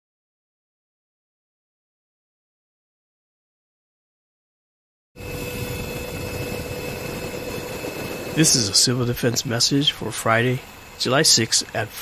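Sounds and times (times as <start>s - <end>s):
constant whine: 5.2s - 12.0s
helicopter engine and rotor drone: 5.2s - 12.0s.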